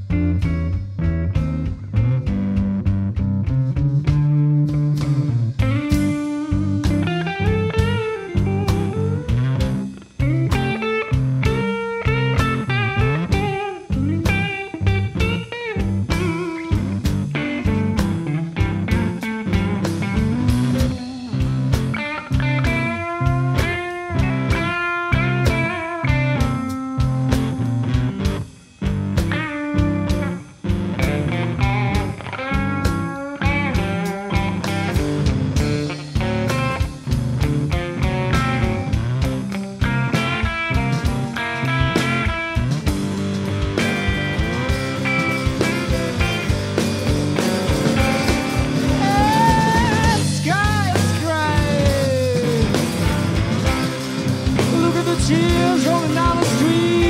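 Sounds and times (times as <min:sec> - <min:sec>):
electric guitars: 0:00.0 - 0:57.0
guitar line of bent notes: 0:00.0 - 0:57.0
steady drum beat: 0:00.0 - 0:57.0.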